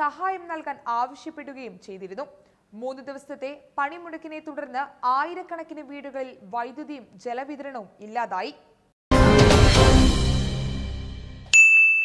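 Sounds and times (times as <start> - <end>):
musical hit: 9.1 - 11.5
bright bell-like ding: 11.4 - 12.0.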